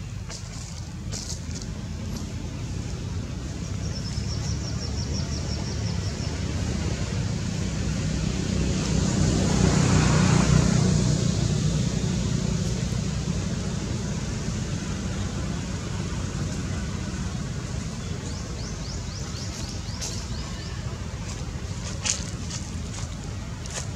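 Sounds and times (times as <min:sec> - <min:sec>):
motor vehicle passing: 0:01.1 - 0:23.9.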